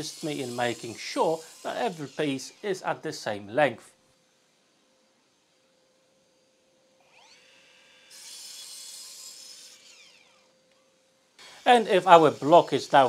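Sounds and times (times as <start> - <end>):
mitre saw cutting wood: 0.0 - 3.8, 7.0 - 13.0
saw motor whining: 0.0 - 13.0.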